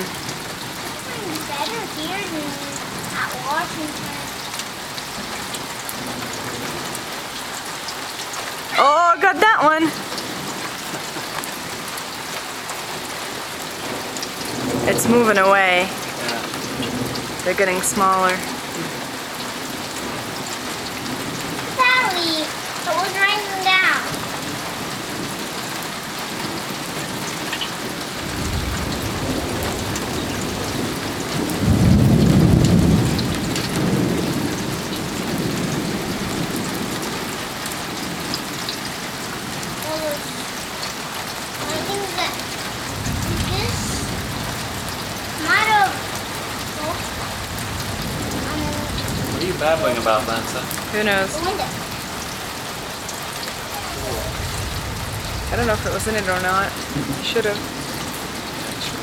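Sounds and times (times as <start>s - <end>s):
steady rain on pavement: 0.0s - 59.0s
thunder rumbling: 0.0s - 59.0s.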